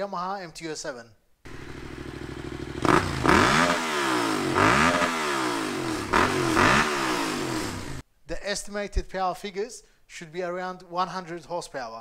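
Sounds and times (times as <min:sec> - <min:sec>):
motorcycle engine idling and revving: 0:01.5 - 0:08.0.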